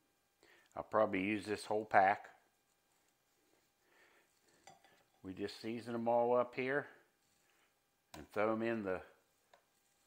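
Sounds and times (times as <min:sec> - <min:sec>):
soft rustle: 0:01.4 - 0:10.0.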